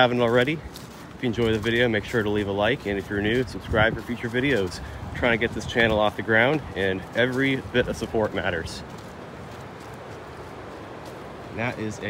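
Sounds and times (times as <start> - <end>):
footsteps crunching on leaves: 0.0 - 12.0
waterfall and river rushing: 7.0 - 12.0.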